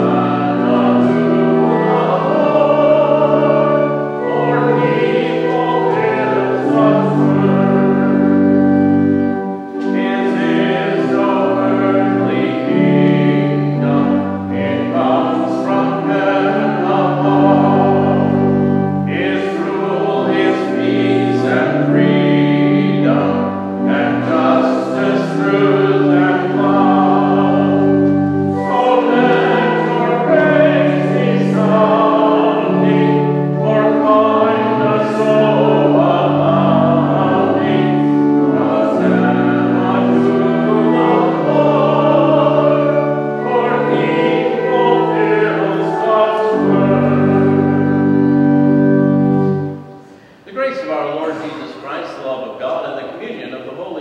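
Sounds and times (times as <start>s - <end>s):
congregation singing a hymn: 0.0s - 53.2s
organ chords: 0.0s - 54.0s.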